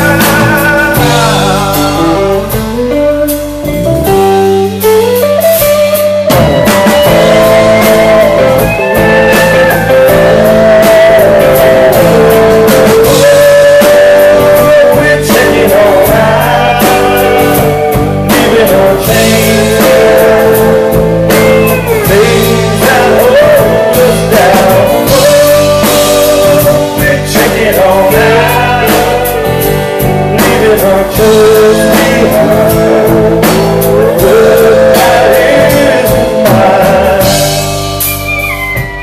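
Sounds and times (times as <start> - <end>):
man singing lead: 0.0 - 4.1, 6.2 - 39.0
bass: 0.0 - 39.0
drums: 0.0 - 39.0
electric guitars: 0.0 - 39.0.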